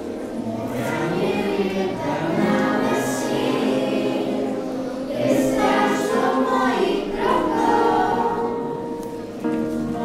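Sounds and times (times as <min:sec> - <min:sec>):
acoustic guitar: 0:00.0 - 0:10.0
girls singing together: 0:00.0 - 0:10.0.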